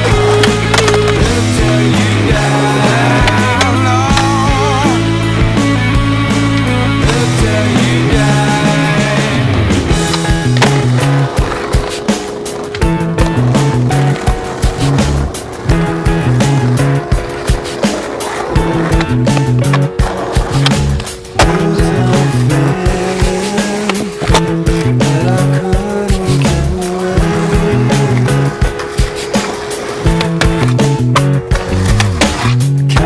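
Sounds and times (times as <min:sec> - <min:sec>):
rock music: 0:00.0 - 0:33.0
skateboard clacks: 0:00.0 - 0:33.0
skateboard wheels rolling: 0:00.0 - 0:33.0.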